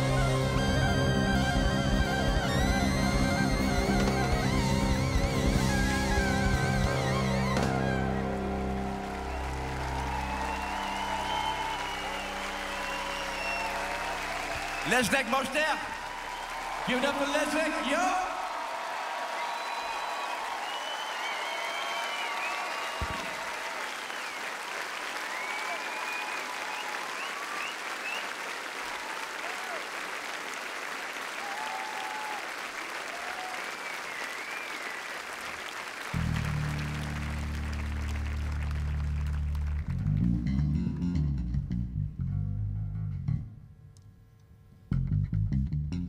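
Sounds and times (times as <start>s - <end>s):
electric bass guitar: 0.0s - 11.4s, 36.2s - 43.8s, 44.9s - 46.0s
crowd applauding and cheering: 0.0s - 41.1s.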